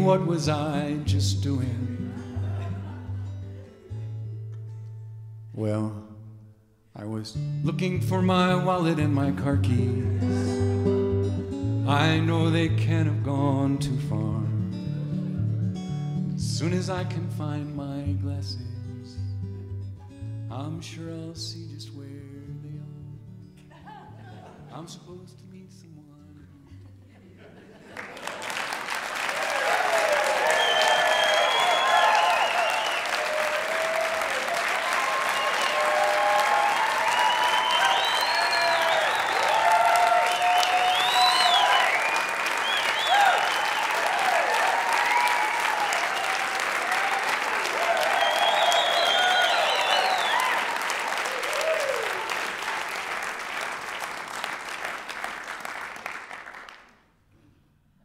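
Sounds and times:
audience applauding and cheering: 0:27.9 - 0:57.0
whoops and shouts: 0:29.3 - 0:52.3.

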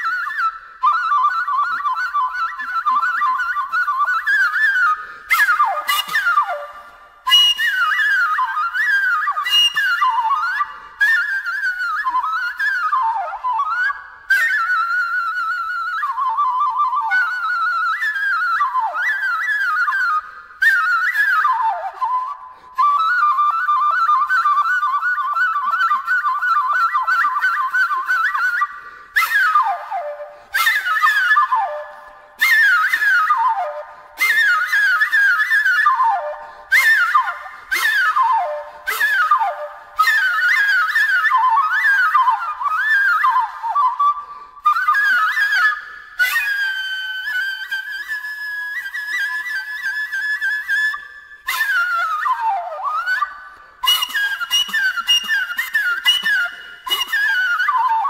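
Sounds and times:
flute playing: 0:00.0 - 0:58.0.

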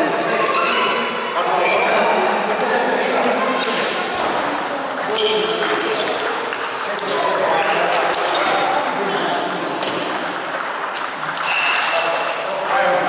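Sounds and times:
murmur of voices: 0:00.0 - 0:13.0
table tennis balls clicking: 0:03.6 - 0:13.0.

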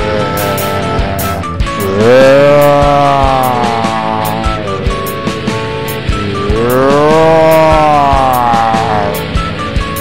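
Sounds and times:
sustained note sliding up: 0:00.0 - 0:09.2
background music with steady beat: 0:00.0 - 0:10.0.

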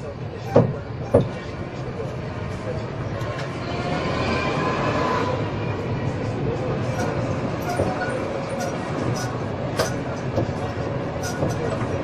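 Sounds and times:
tram wheels rumbling on rails: 0:00.0 - 0:12.0.

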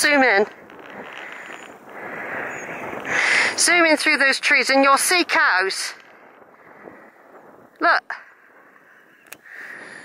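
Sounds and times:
faint wind: 0:00.0 - 0:10.0.

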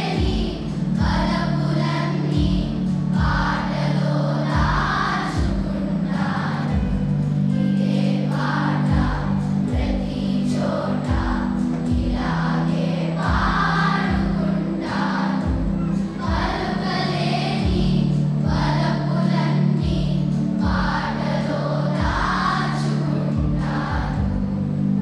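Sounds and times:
children's choir singing: 0:00.0 - 0:25.0
musical accompaniment with beat: 0:00.0 - 0:25.0.

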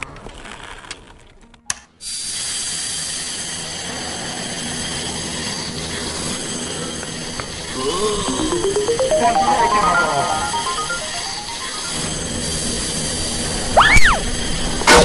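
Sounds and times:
rising run of musical notes: 0:07.8 - 0:12.3.

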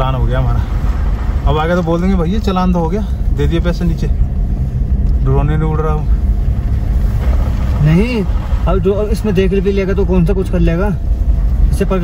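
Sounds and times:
engine and road noise rumble: 0:00.0 - 0:12.0.

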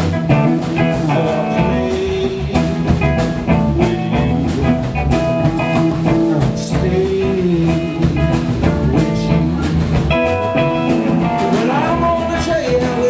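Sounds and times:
blues-rock band playing: 0:00.0 - 0:13.0.

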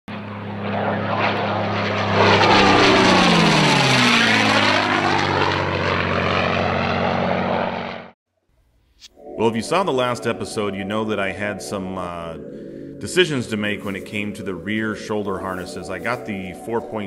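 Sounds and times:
propeller airplane flying past: 0:00.1 - 0:08.2, 0:10.5 - 0:17.0.

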